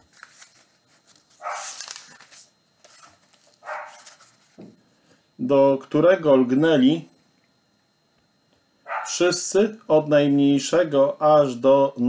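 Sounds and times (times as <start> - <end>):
man reading aloud: 5.4 - 7.1, 9.0 - 12.0.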